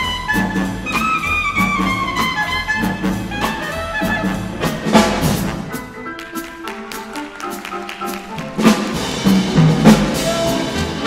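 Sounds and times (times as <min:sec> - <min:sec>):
clarinet lead line: 0:00.0 - 0:06.9, 0:10.0 - 0:11.0
jazz big band swing music: 0:00.0 - 0:11.0.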